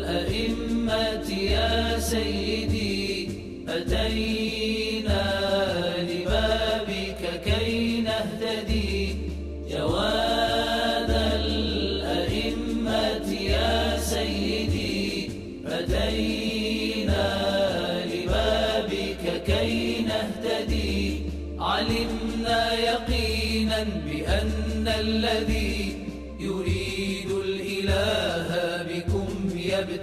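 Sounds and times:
deep beat: 0:00.0 - 0:30.0
person chanting devotional song: 0:00.0 - 0:30.0.

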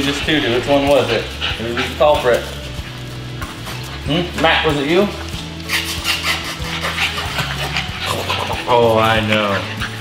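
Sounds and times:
background music low notes: 0:00.0 - 0:10.0
puppies making small sounds: 0:00.0 - 0:10.0.

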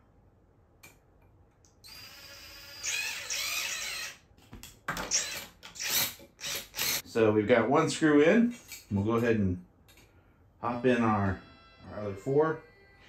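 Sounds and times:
cordless drill whirring: 0:01.8 - 0:04.2, 0:05.0 - 0:07.0.

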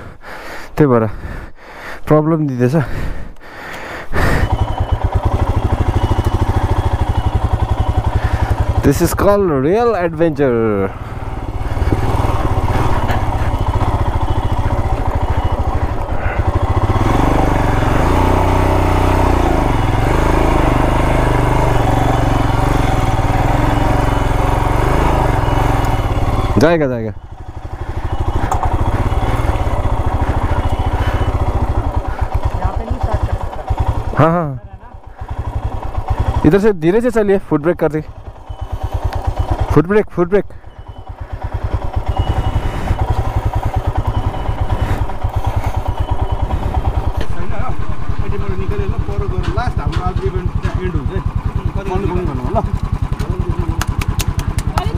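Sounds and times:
motorcycle engines running: 0:00.0 - 0:54.9.

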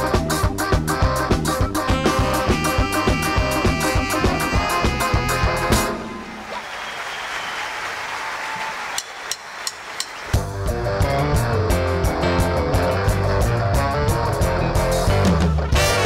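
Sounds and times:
band playing upbeat tune: 0:00.0 - 0:06.3, 0:09.7 - 0:16.0
audience applause: 0:05.8 - 0:10.4.

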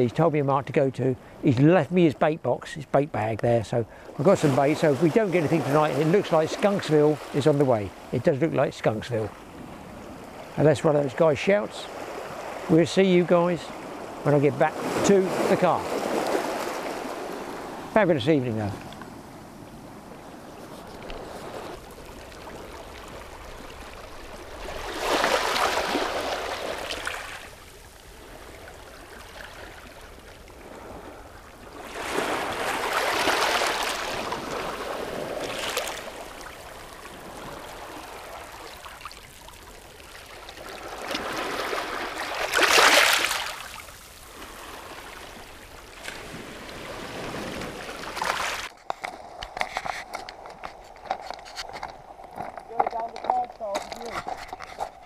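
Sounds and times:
sea waves washing over pebbles: 0:11.7 - 0:19.3, 0:20.8 - 0:49.2.

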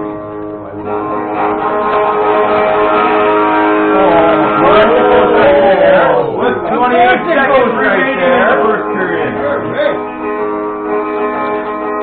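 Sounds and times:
guitar strumming through amplifier: 0:00.0 - 0:12.0
person speaking: 0:03.9 - 0:10.1.

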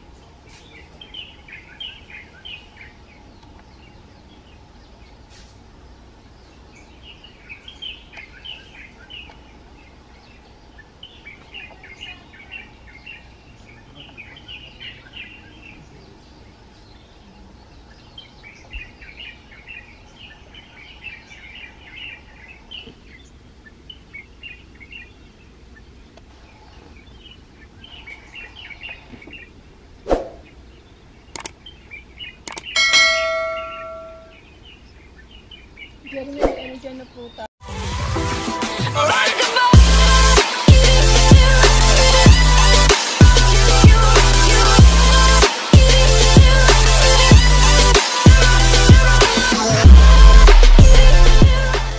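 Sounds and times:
small birds chirping: 0:00.0 - 0:37.5
sharp clicks: 0:31.3 - 0:31.6, 0:32.4 - 0:32.8
bell-like ding: 0:32.8 - 0:34.3.

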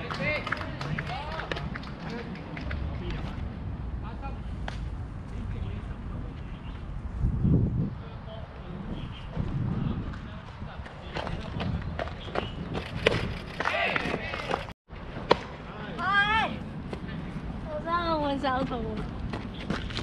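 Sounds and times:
wind buffeting microphone: 0:04.8 - 0:14.7.

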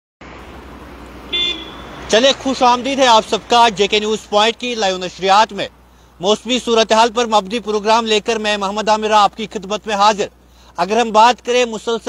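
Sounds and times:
road traffic noise: 0:00.2 - 0:12.0
car horn toot: 0:01.3 - 0:02.1.

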